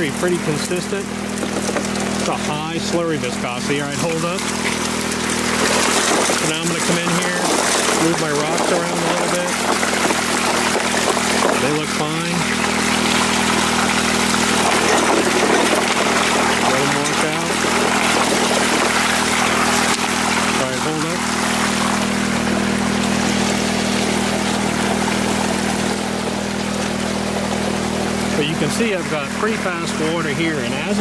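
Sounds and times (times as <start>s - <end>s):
engine humming steadily: 0.0s - 31.0s
water pouring into metal box: 0.0s - 31.0s.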